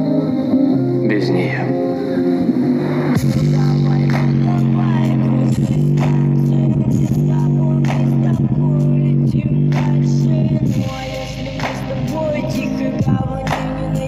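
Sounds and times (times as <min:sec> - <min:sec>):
bass-heavy music from speaker: 0:00.0 - 0:14.0.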